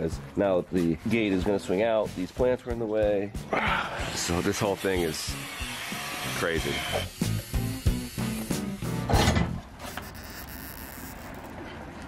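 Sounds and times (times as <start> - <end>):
background music: 0.0 - 9.6
rasping work noise: 3.9 - 11.6
angle grinder cutting metal: 4.0 - 9.1.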